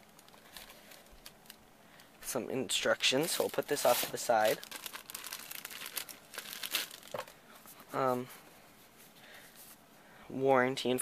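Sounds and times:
plastic wrapping crinkling: 0:00.0 - 0:01.6, 0:03.2 - 0:07.4.

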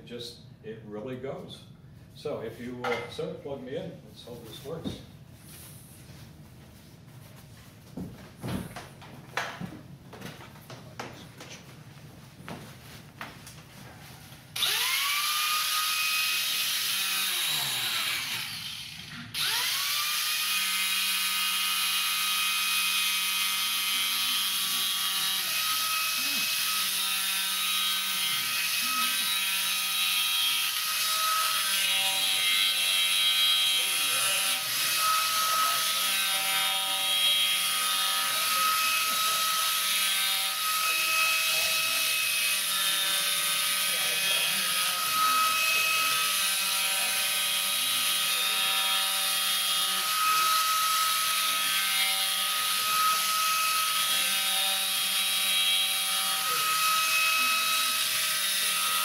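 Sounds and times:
electric carving tool motor: 0:14.6 - 0:59.0.

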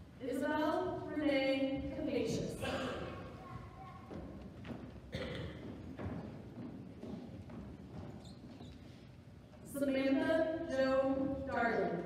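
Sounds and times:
low background noise: 0:00.0 - 0:12.0
footsteps on hollow stage: 0:01.6 - 0:12.0.

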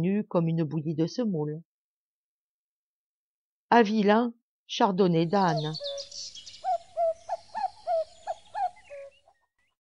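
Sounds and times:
bird calling short notes: 0:05.5 - 0:09.3.

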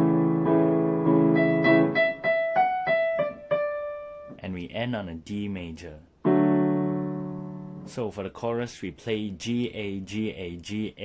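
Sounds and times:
digital piano playing: 0:00.0 - 0:04.4, 0:06.2 - 0:08.0.

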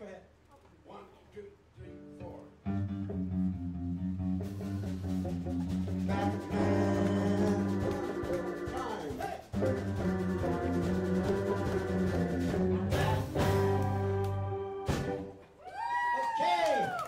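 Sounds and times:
electric bass: 0:02.0 - 0:08.8, 0:09.6 - 0:15.3
electric guitars: 0:02.0 - 0:15.4
pedal steel guitar: 0:02.6 - 0:09.0.

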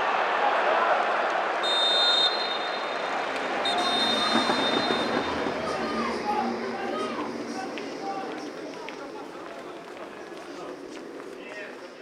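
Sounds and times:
stadium crowd noise: 0:00.0 - 0:12.0
whistle blasts: 0:01.6 - 0:05.8.

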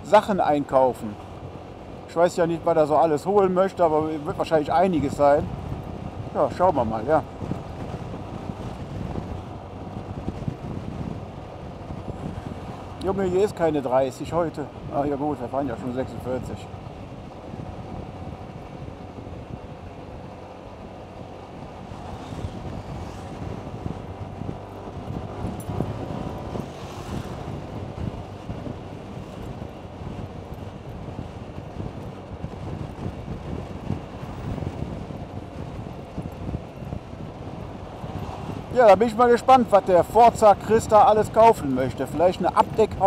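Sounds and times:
road noise: 0:00.0 - 0:43.0
wind rushing across microphone: 0:00.0 - 0:43.0
scooter engine drone: 0:15.8 - 0:38.8.

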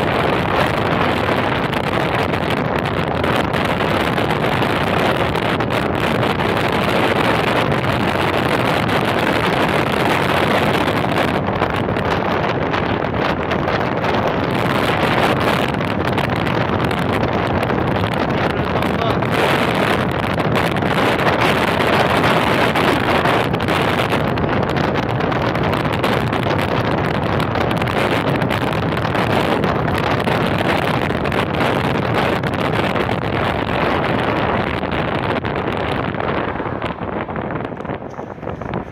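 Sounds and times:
wind rushing over microphone: 0:00.0 - 0:38.9.

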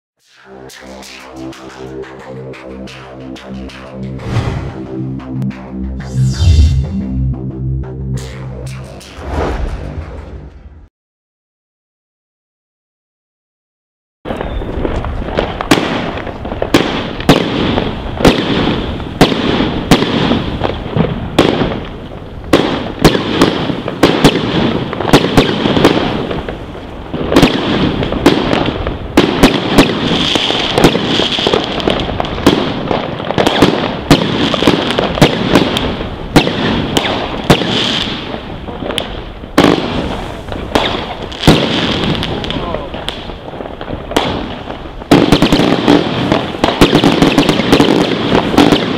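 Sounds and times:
firework bangs: 0:14.3 - 0:48.9
firework crackle: 0:14.3 - 0:48.9.

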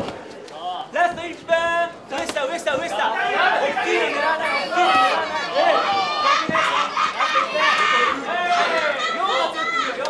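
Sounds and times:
voices calling out: 0:02.1 - 0:10.0.

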